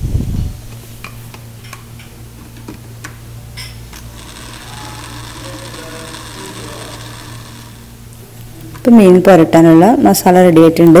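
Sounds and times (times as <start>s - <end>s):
electric mixer grinder running: 4.0s - 8.2s.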